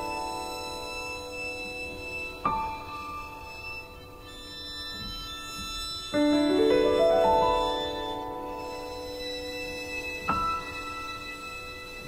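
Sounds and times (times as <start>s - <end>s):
minimalist chamber music: 0.0s - 12.0s.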